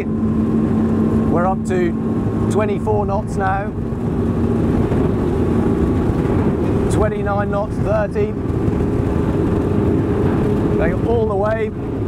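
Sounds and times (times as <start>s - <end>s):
boat diesel engines droning: 0.0s - 12.0s
wind and water rushing: 0.0s - 12.0s.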